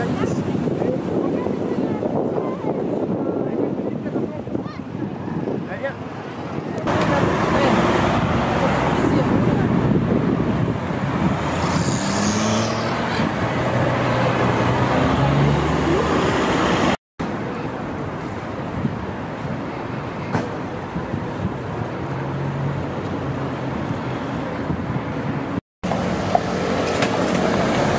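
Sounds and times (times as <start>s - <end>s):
busy road traffic: 0.0s - 27.9s
street noise: 0.0s - 27.9s.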